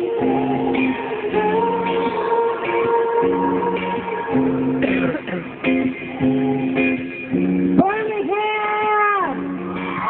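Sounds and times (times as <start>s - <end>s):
strummed guitar chords: 0.0s - 10.0s.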